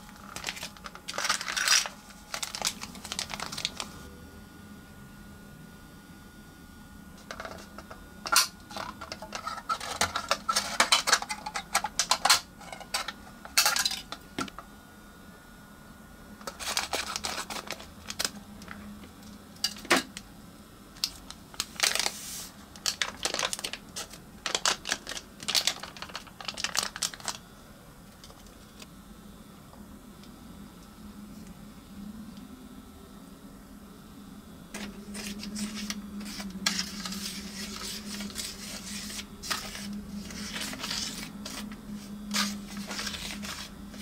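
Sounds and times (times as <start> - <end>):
foil packet crinkling and tearing: 0.0 - 4.0, 7.2 - 14.0, 16.4 - 18.8, 21.0 - 27.4, 34.8 - 44.0.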